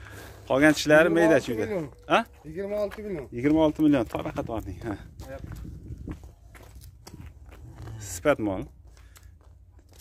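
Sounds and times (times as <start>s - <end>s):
hooves and footsteps on pavement: 0.0s - 10.0s.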